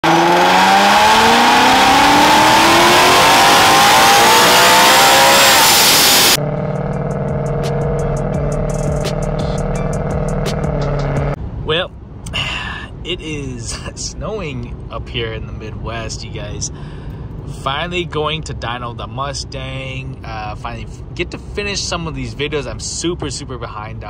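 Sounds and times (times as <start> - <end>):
steady drone: 0.0 - 11.4
supercharger whine: 0.0 - 11.4
car engine at full throttle: 0.0 - 11.6.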